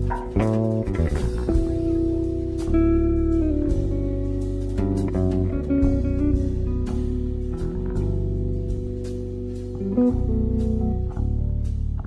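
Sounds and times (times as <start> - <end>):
bass guitar notes: 0.0 - 12.0
electric guitar notes: 0.0 - 12.0
light drums: 0.0 - 12.0.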